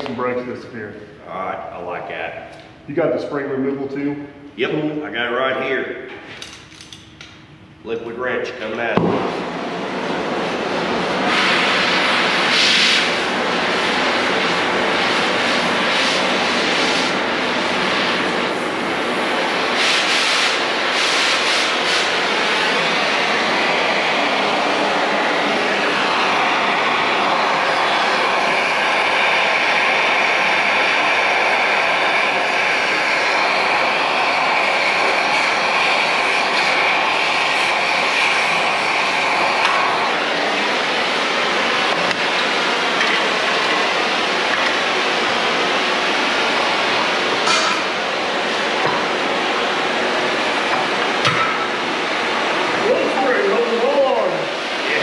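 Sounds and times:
cutting torch roar: 0:06.8 - 0:55.0.

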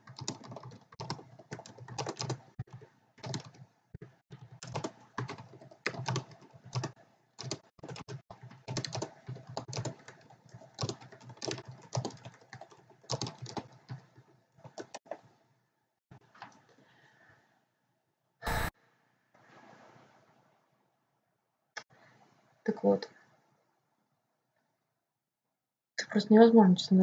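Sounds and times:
typing on computer keyboard: 0:00.0 - 0:15.3.

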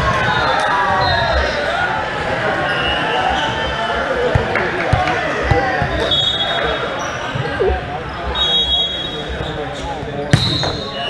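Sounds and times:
chatter in echoing gym: 0:00.0 - 0:11.0.

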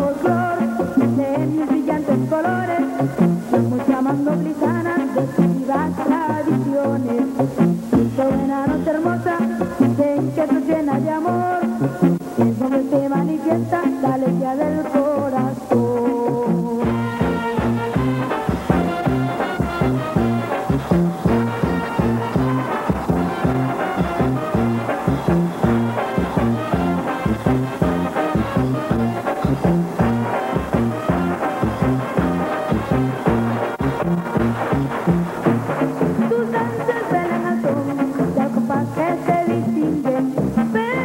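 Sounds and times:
bass line with bouncing beat: 0:16.8 - 0:37.0
brass playing melody: 0:16.8 - 0:37.6.

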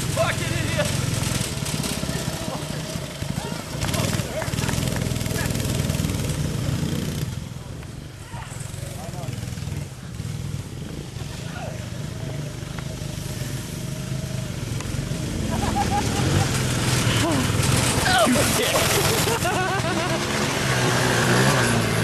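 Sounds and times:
atv engine running: 0:00.0 - 0:22.0
go-kart engine running: 0:00.0 - 0:22.0
voices shouting: 0:02.0 - 0:05.7, 0:08.1 - 0:08.8.

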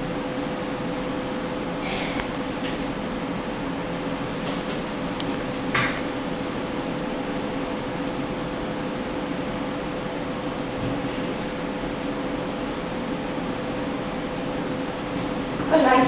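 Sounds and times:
low equipment hum: 0:00.0 - 0:16.0.

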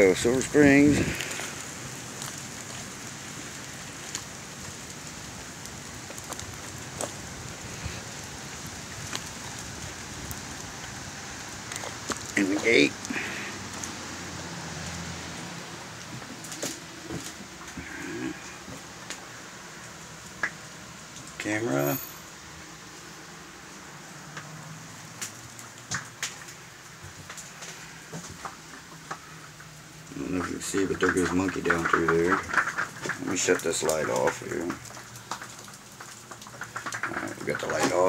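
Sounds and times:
steady rain hiss: 0:00.0 - 0:38.0.

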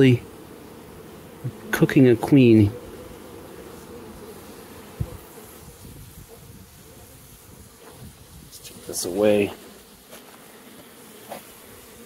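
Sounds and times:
honeybee colony humming: 0:00.0 - 0:12.0.

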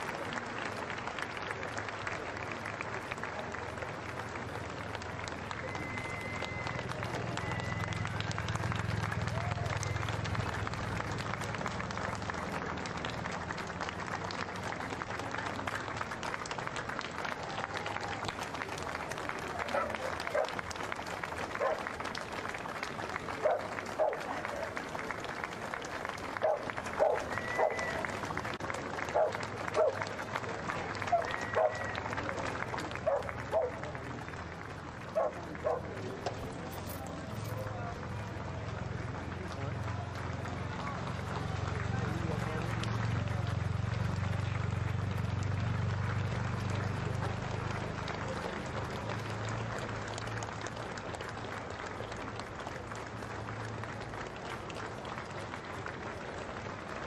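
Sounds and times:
crowd applauding: 0:00.0 - 0:57.0
loud calls from crowd: 0:00.0 - 0:57.0
low rumble of passing cars: 0:00.1 - 0:57.0.

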